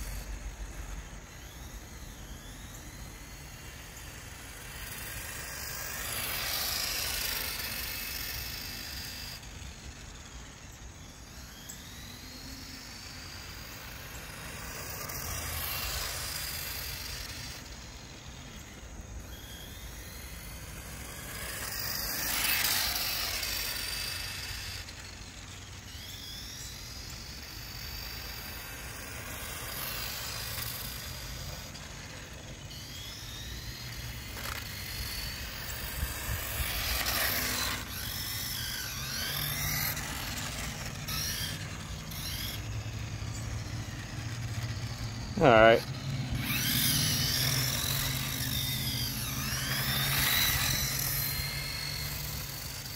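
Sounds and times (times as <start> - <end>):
toy car motor whining: 0.0 - 52.9.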